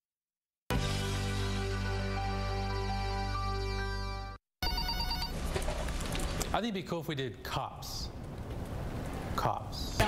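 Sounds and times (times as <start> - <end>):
music: 0.7 - 4.4
office telephone ringing: 4.6 - 5.4.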